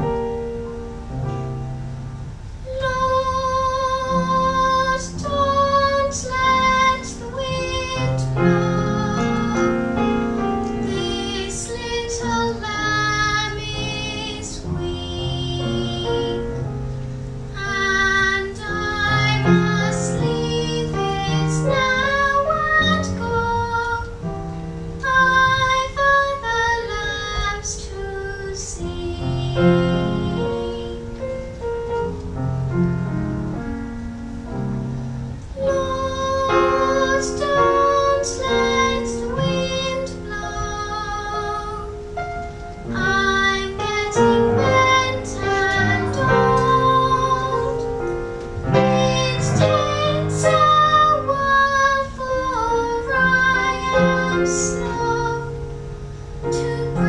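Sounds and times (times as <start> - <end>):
instrumental accompaniment: 0.0 - 57.0
children singing together: 2.7 - 16.8, 17.5 - 24.2, 25.0 - 31.3, 35.5 - 57.0.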